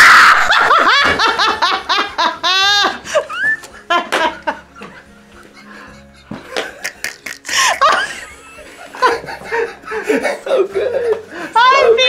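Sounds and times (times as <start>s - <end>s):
startled scream: 0.0s - 0.6s
high shrieking laugh: 0.0s - 1.5s
people laughing: 0.0s - 12.0s.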